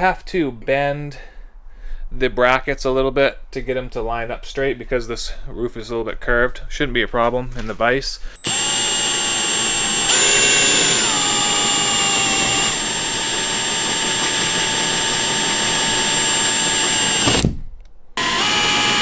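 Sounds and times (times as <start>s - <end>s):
cordless drill whining: 8.4s - 17.5s, 18.2s - 19.0s.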